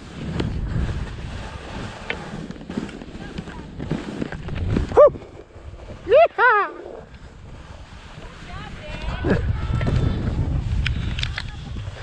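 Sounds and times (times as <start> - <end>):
skis scraping over snow: 0.0 - 12.0
wind on microphone: 0.0 - 12.0
person shouting: 6.1 - 6.9.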